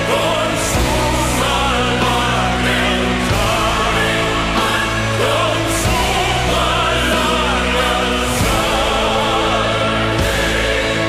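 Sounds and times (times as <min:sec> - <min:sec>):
choir singing: 0:00.0 - 0:11.0
symphonic metal played live: 0:00.0 - 0:11.0.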